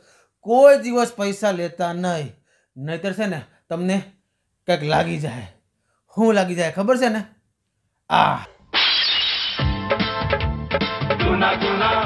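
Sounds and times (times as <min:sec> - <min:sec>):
glass crash and shatter: 0:08.8 - 0:09.7
music: 0:09.5 - 0:12.0.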